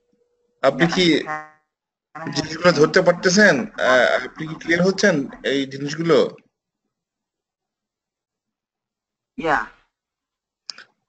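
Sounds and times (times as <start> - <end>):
person speaking: 0.6 - 1.4, 2.2 - 6.4, 9.4 - 9.7.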